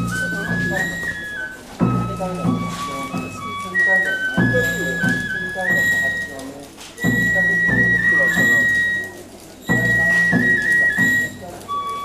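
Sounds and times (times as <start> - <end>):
high flute-like note: 0.0 - 6.4.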